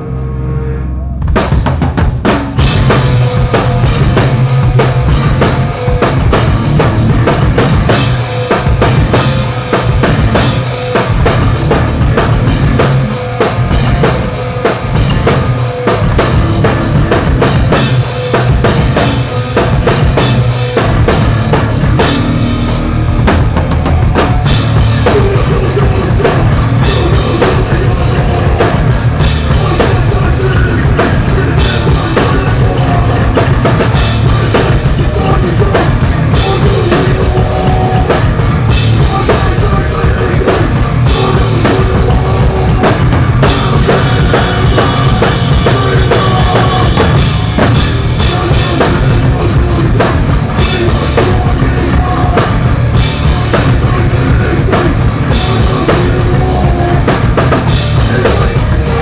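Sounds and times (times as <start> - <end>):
bass guitar: 0.0 - 59.0
distorted electric guitars: 0.0 - 59.0
drum kit with cymbals: 1.2 - 59.0.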